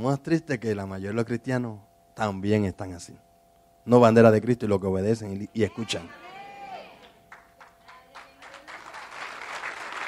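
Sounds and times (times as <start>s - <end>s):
congregation applauding: 7.0s - 10.0s.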